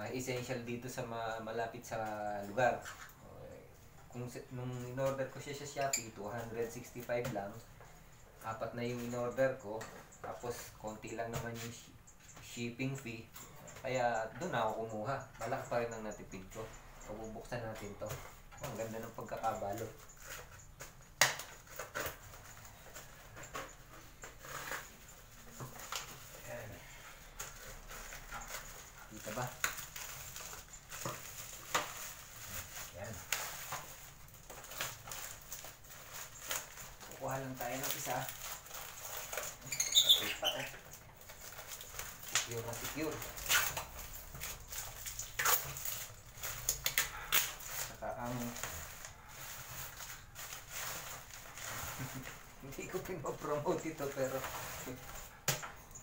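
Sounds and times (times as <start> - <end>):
plastic wrapping crinkling: 18.6 - 56.0.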